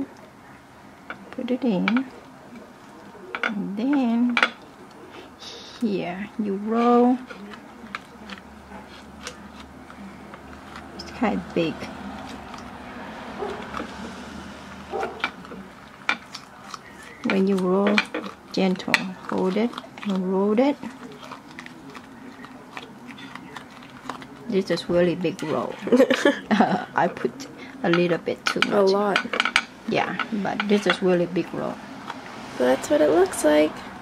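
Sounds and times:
hands rolling sticky rice paper: 1.8s - 32.4s.

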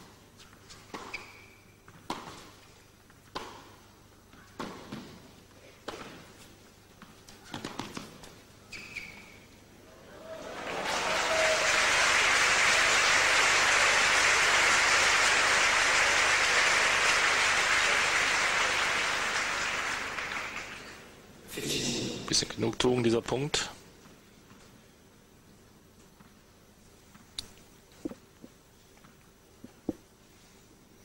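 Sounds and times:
tennis ball strikes: 3.3s - 3.8s, 4.5s - 5.2s
crowd applauding: 10.0s - 21.0s.

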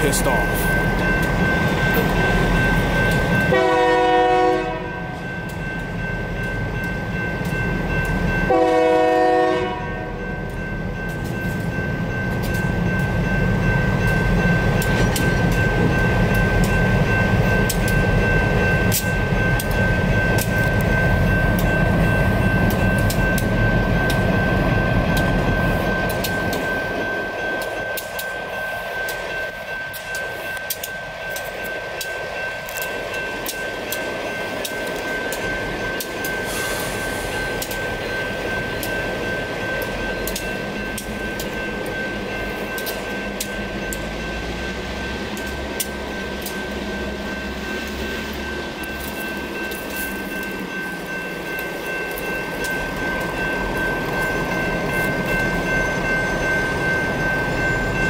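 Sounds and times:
crossing bell ringing: 0.0s - 58.0s
locomotive rumbling past: 0.0s - 58.0s
train wheel clicks: 0.1s - 3.5s, 10.4s - 58.0s
locomotive horn blasts: 3.5s - 5.2s, 8.5s - 10.2s.

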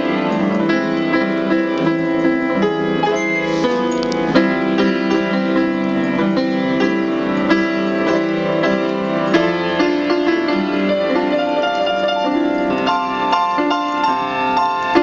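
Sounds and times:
slow piano ballad: 0.0s - 15.0s.

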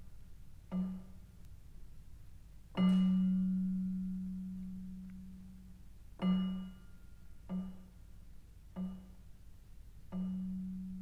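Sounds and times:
low ringing struck note: 2.8s - 7.9s, 10.1s - 11.0s.

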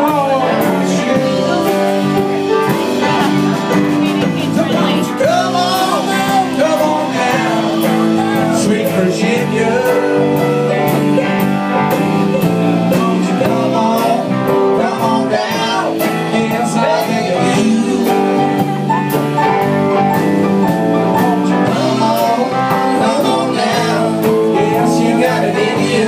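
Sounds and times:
person singing: 0.0s - 11.4s, 12.3s - 19.0s, 21.0s - 26.0s
drum kit beat: 0.0s - 26.0s
electric and acoustic guitars: 0.0s - 26.0s.

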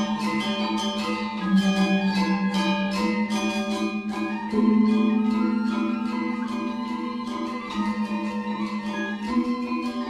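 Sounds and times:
gamelan ensemble music: 0.0s - 10.0s.

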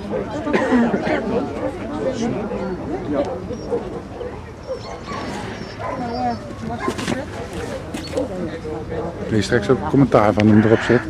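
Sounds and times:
dog whining and yipping: 3.5s - 8.3s.

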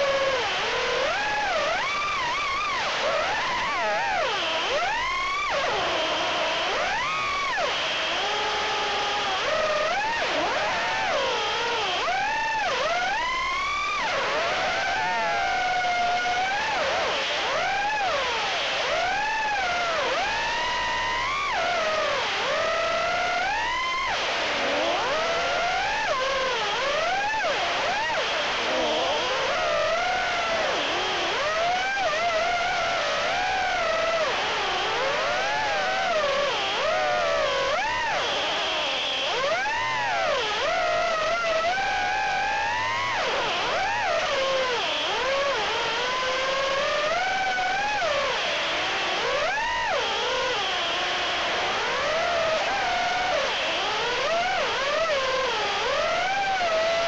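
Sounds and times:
quadcopter motors whining: 0.0s - 57.0s.

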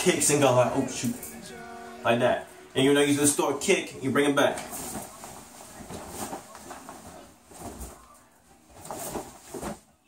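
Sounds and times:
feet shuffling on floor: 4.5s - 10.0s.

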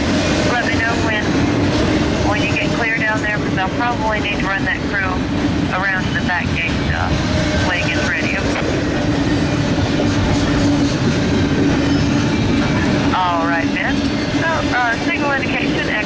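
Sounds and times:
freight train wheels rumbling: 0.0s - 16.0s.

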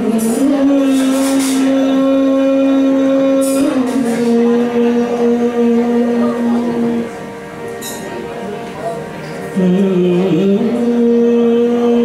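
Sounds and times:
electronic keyboard slow melody: 0.0s - 12.0s.

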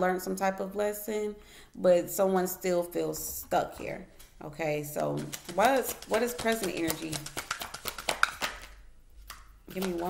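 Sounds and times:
cards being shuffled: 5.0s - 10.0s.

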